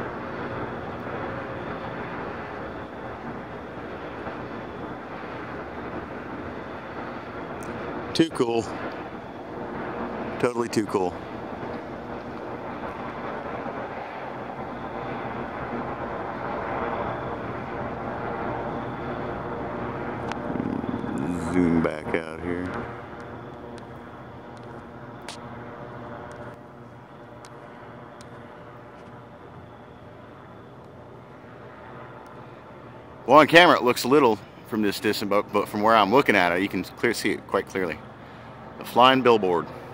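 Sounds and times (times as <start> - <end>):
steady engine drone: 0.0 - 39.9.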